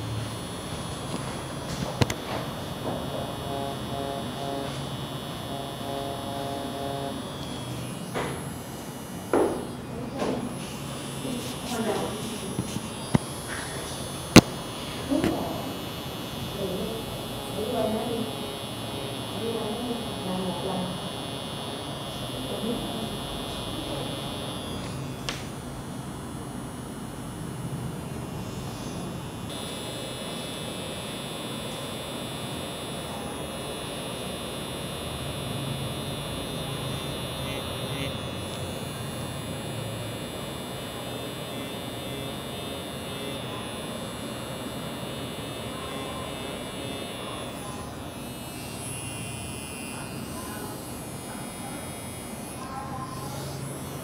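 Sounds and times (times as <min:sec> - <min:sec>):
makeup machine pen buzzing: 0:00.0 - 0:54.0.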